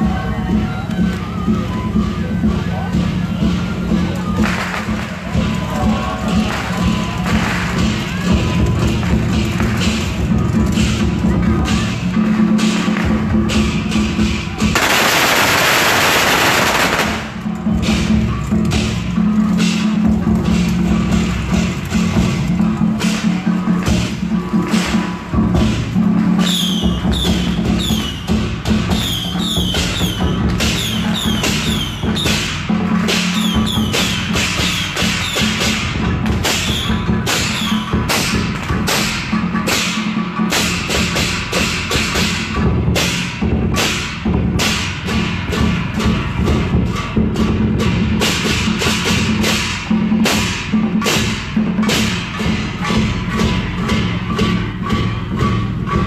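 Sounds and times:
barrel drums beating: 0:00.0 - 0:56.0
hand cymbals crashing: 0:12.6 - 0:19.8, 0:29.6 - 0:56.0
loud burst of noise: 0:14.8 - 0:17.4.

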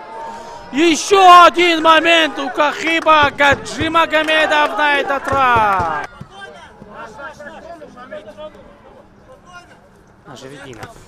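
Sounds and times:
footballers shouting to each other: 0:00.0 - 0:09.8.

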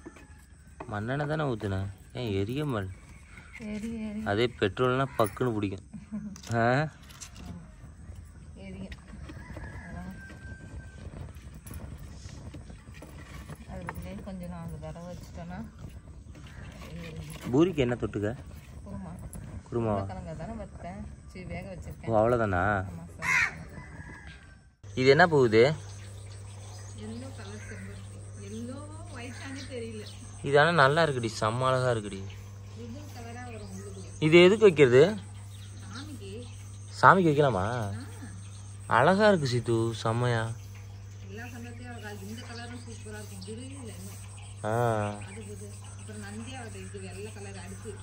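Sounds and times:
insects chirping: 0:00.0 - 0:48.0
steady low hum: 0:00.0 - 0:48.0
crow cawing: 0:05.0 - 0:05.6, 0:16.4 - 0:16.8, 0:23.2 - 0:24.4, 0:27.4 - 0:28.2.

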